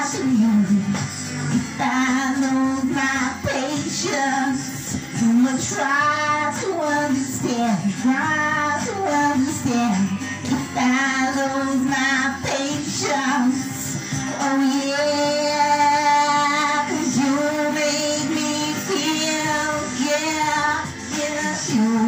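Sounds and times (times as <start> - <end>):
woman singing with vibrato: 0.0 - 1.0, 1.6 - 22.0.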